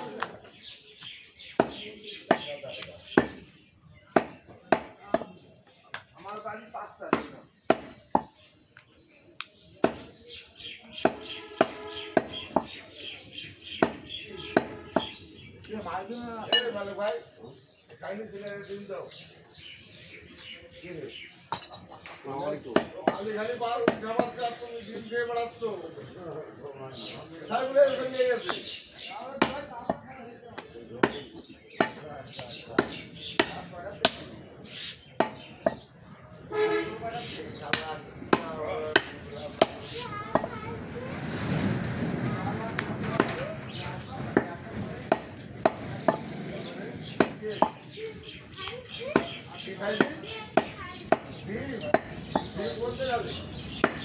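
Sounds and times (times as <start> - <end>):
voices talking: 0.0 - 54.0
cleaver chopping on wooden block: 1.6 - 3.4, 4.1 - 5.3, 7.1 - 8.4, 9.8 - 10.1, 13.8 - 15.2, 29.4 - 30.0, 30.6 - 32.0, 32.8 - 34.3, 37.7 - 40.5, 47.1 - 47.8, 53.7 - 54.0.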